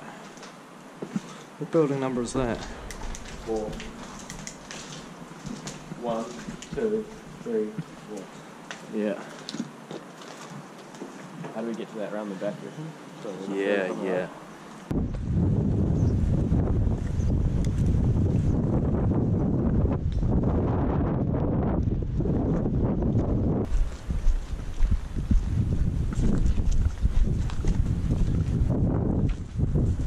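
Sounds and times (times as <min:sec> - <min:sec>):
footsteps crunching over rubble: 0:01.0 - 0:11.6, 0:21.8 - 0:29.6
wind buffeting microphone: 0:02.1 - 0:08.0, 0:14.9 - 0:30.0.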